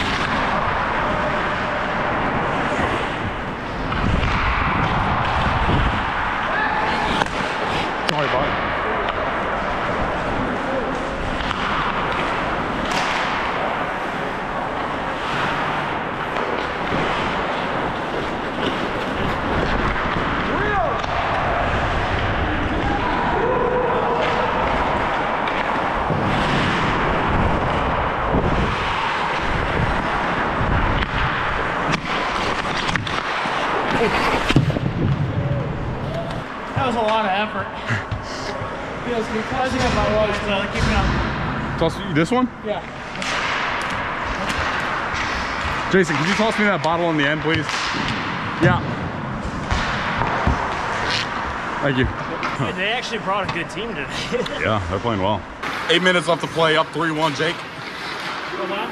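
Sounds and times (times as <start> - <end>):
hockey sticks and puck clacking: 0.0 - 58.9
players' voices: 0.0 - 58.9
skates rushing on ice: 0.0 - 58.9.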